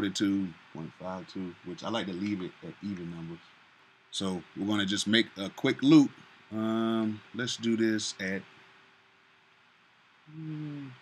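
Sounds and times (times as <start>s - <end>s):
man's drawn-out hesitation sound: 0.0s - 3.4s, 4.2s - 8.4s
faint steady hum: 0.0s - 11.0s.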